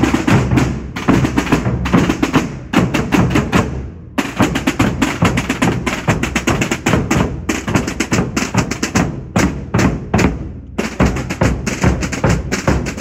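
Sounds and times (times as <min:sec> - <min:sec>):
marching drums beating: 0:00.0 - 0:13.0.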